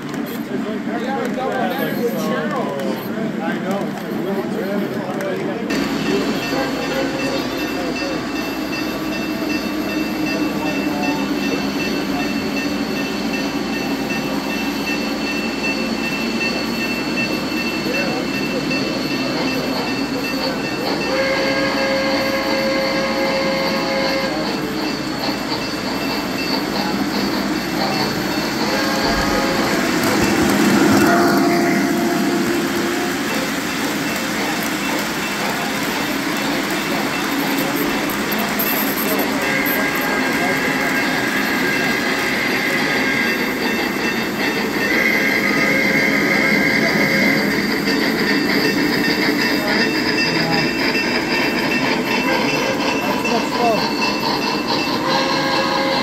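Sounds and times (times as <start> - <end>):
chime whistle: 6.1 - 56.0.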